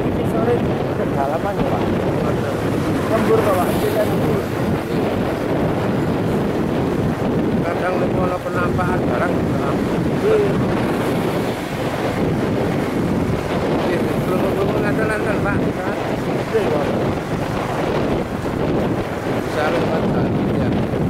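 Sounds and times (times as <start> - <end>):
motorcycle engine and road noise: 0.0 - 21.0
wind rushing over microphone: 0.0 - 21.0.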